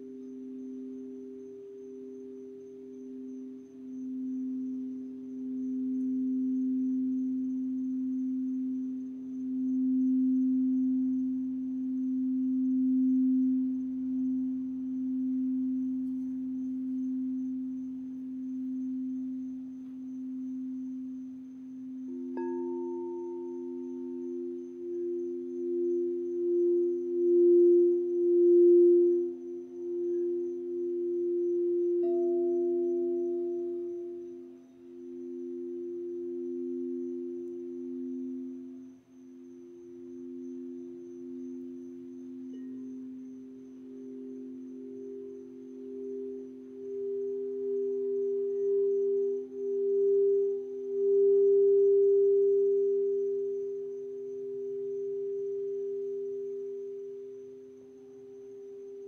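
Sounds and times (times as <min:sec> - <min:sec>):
higher singing bowl: 0:00.0 - 0:59.0
light bowl strike ring: 0:00.0 - 0:59.0
low singing bowl tone: 0:00.0 - 0:59.0.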